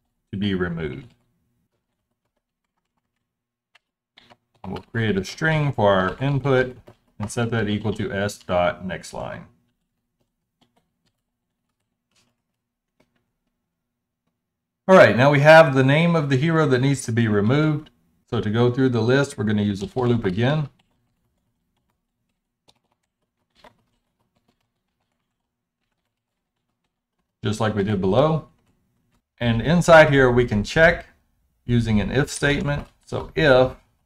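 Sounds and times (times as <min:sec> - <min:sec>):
faint keyboard typing: 0:00.0 - 0:14.5, 0:15.9 - 0:31.2, 0:31.8 - 0:34.0
keyboard keystrokes: 0:19.8 - 0:27.3.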